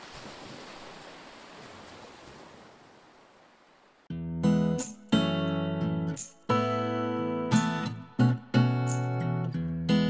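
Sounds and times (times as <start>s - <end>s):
ocean waves washing: 0.0s - 4.1s.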